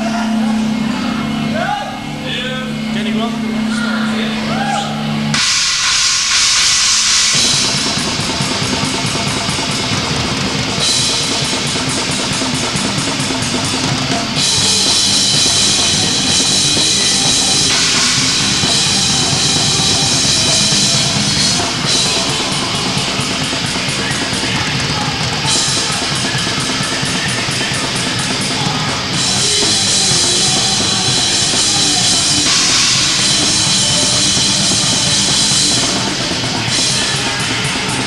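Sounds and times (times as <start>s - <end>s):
cymbal crash: 0.0s - 38.0s
live rock band playing: 0.0s - 38.0s.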